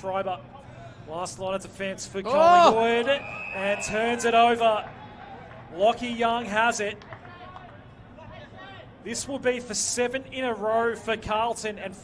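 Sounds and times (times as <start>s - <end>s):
low steady outdoor hum: 0.0s - 12.0s.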